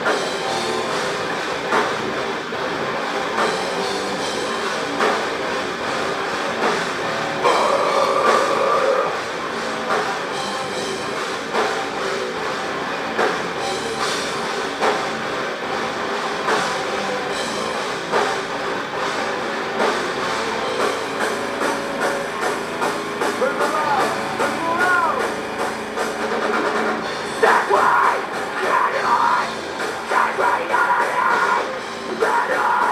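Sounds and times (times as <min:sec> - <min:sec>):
heavy metal band playing: 0:00.0 - 0:32.9.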